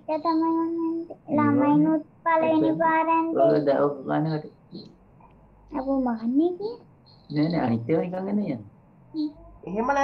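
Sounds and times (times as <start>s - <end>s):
child chanting sing-song: 0.1s - 3.4s.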